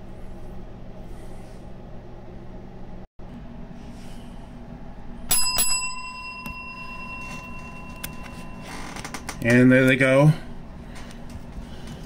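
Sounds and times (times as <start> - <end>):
small bell ringing: 5.3 - 9.6.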